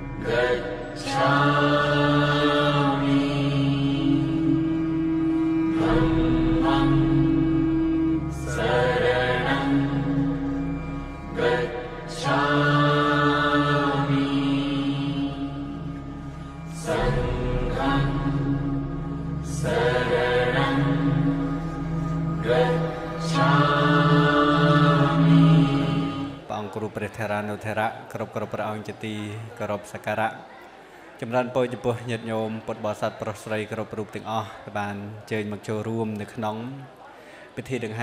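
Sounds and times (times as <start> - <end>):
low drone: 0.0 - 26.5
chanting in long held notes: 0.0 - 27.0.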